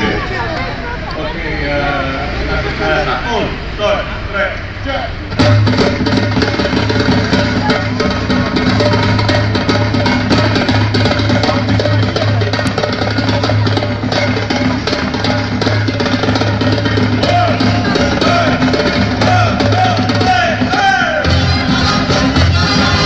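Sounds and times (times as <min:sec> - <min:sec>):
heavy bass line: 0:00.0 - 0:23.0
live band music: 0:05.1 - 0:23.0
drum kit beat: 0:05.3 - 0:23.0.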